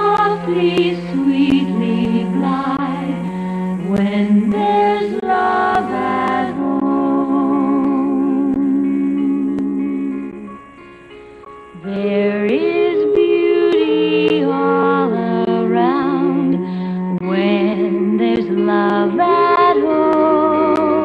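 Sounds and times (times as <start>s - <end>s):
female vocal trio singing a hymn: 0.0s - 10.5s, 11.8s - 21.0s.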